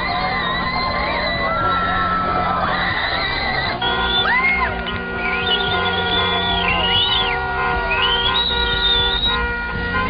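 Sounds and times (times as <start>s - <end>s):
high sliding whistle-like notes: 0.0s - 9.4s.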